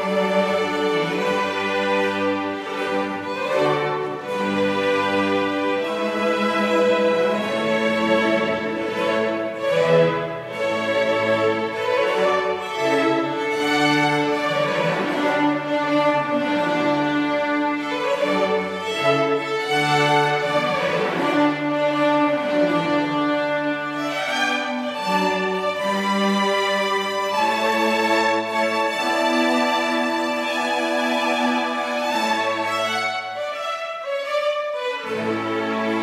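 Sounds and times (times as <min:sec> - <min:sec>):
string orchestra playing classical music: 0:00.0 - 0:36.0.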